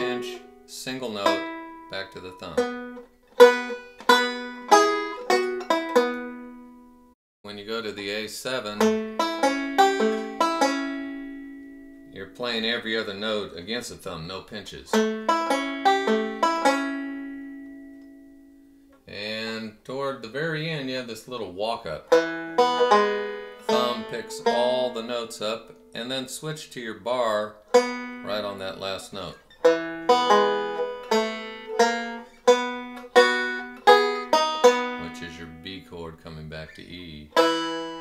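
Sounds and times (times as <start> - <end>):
banjo fingerpicking: 0.0 - 7.1, 8.5 - 19.7, 20.4 - 36.1, 36.7 - 38.0.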